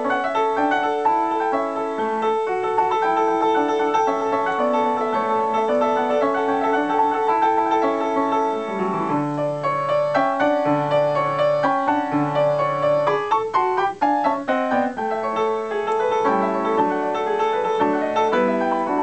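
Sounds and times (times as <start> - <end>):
upright piano playing: 0.0 - 19.0.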